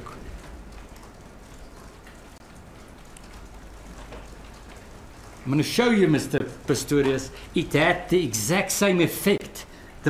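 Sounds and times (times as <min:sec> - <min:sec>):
low hiss and hum: 0:00.0 - 0:10.0.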